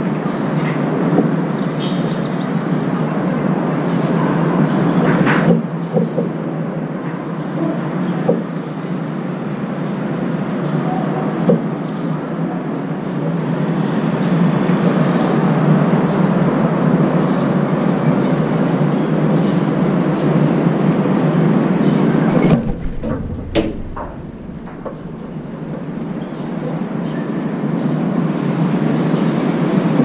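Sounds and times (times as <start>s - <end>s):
rumbling urban background noise: 0.0s - 30.0s.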